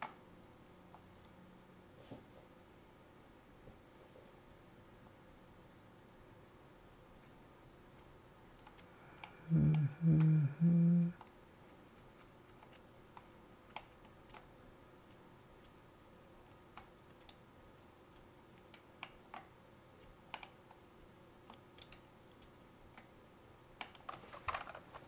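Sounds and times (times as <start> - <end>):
faint keyboard clicks: 7.9 - 10.4, 11.2 - 15.8, 16.4 - 17.5, 18.1 - 20.8, 21.4 - 23.1, 23.8 - 25.0
murmured voice: 9.3 - 11.2.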